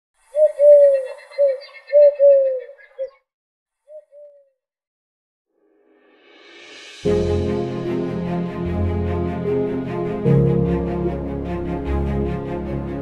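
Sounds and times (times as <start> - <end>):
bird cooing: 0.3 - 3.2, 3.9 - 4.5.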